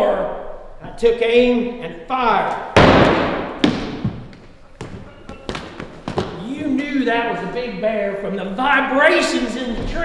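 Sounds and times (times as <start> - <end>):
gunshot ringing in a hall: 2.8 - 4.2.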